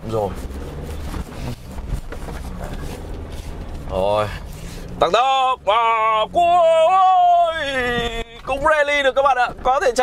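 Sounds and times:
diesel truck engine rumbling: 0.0 - 10.0.

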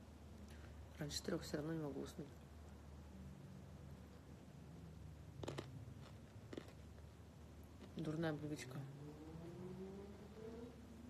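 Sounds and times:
low steady hum: 0.0 - 11.0
chocolate crunching: 5.2 - 8.2.

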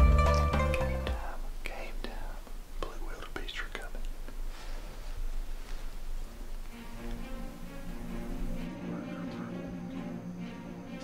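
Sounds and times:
music with plucked notes: 0.0 - 1.2
faint whispering: 1.1 - 4.4, 8.7 - 9.8.

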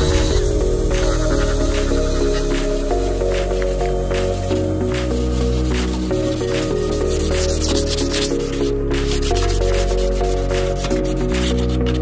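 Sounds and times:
background music: 0.0 - 12.0
sandpaper scraping wood: 0.0 - 12.0.

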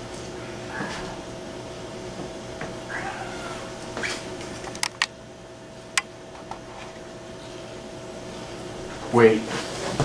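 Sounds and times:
cat meowing: 2.9 - 3.7.

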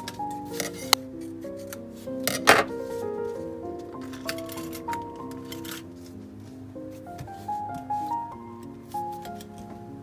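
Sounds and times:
instrumental background music: 0.0 - 10.0.

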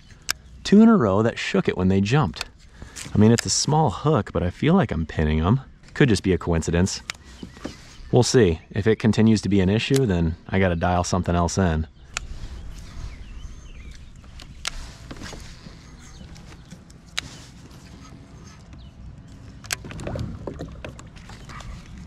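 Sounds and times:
low rumble: 11.5 - 22.0
rustling: 12.2 - 18.6.

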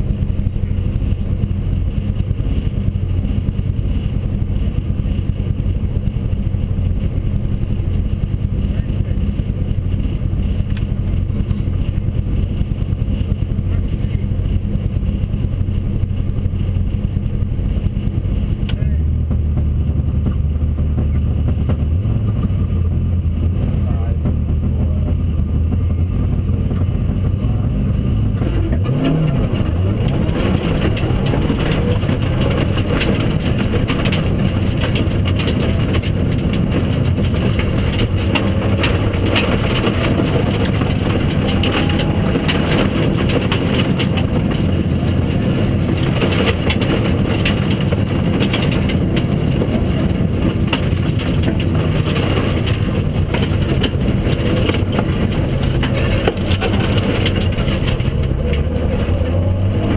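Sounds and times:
rally car engine: 0.0 - 59.9
stones rattling against underbody: 29.1 - 59.5.

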